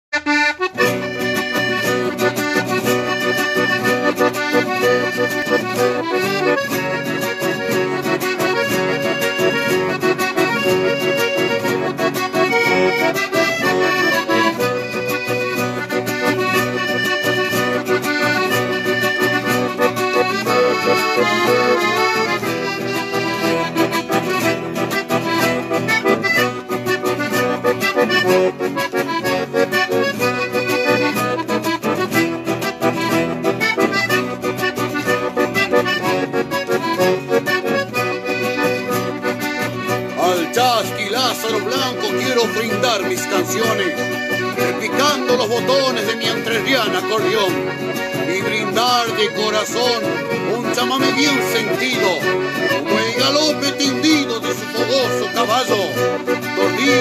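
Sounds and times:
accordion melody: 0.1s - 57.0s
acoustic guitar accompaniment: 0.1s - 57.0s.

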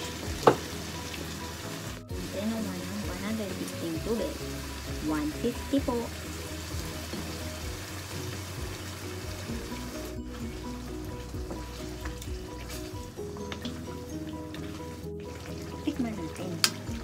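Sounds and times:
background music: 0.0s - 17.0s
food sizzling in a frying pan: 0.0s - 17.0s
water poured into a pan: 6.3s - 17.0s.

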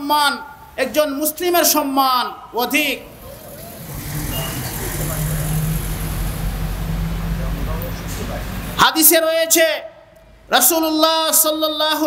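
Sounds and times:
vehicle engine humming: 2.9s - 8.8s.

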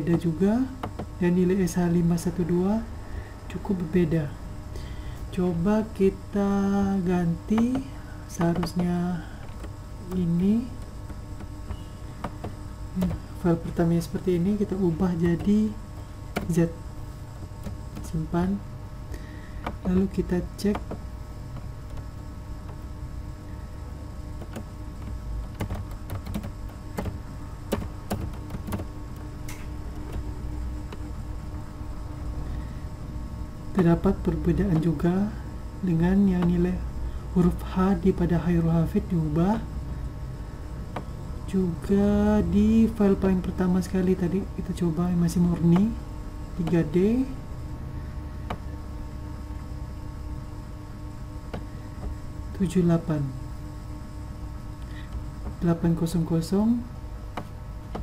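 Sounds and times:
low hum: 0.0s - 58.0s
keyboard key clicks: 24.4s - 30.3s.

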